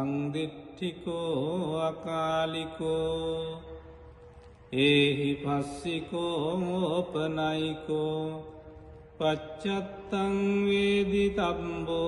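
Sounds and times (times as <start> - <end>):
man chanting: 0.0 - 4.0, 4.7 - 12.0.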